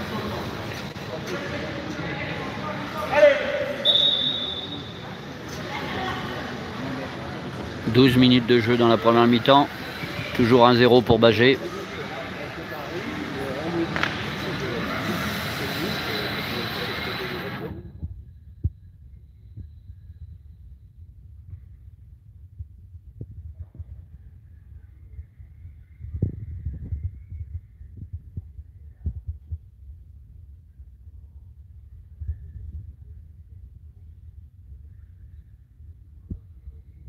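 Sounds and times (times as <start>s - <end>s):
loud wash of voices: 0.0s - 17.8s.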